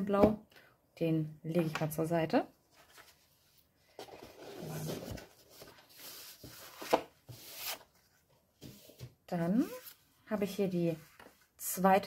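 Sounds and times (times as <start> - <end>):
paper and card rustling: 2.7 - 9.0.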